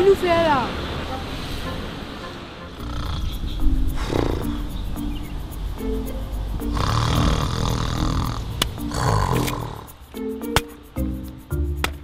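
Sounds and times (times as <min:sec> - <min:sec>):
light comic music: 0:01.1 - 0:12.0
man snoring: 0:02.8 - 0:04.6, 0:06.6 - 0:09.9.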